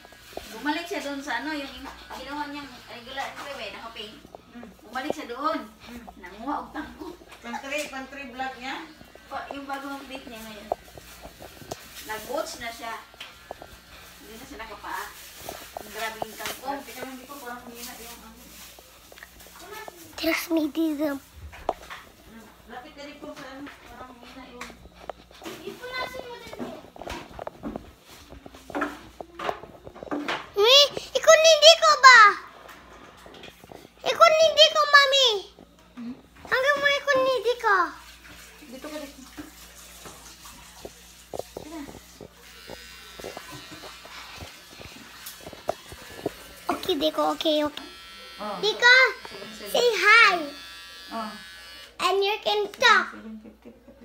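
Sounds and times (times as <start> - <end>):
child talking: 19.5 - 21.3, 25.4 - 27.0, 30.5 - 32.5, 34.0 - 35.6, 36.5 - 38.1, 46.7 - 47.9, 48.6 - 50.7, 52.0 - 53.2.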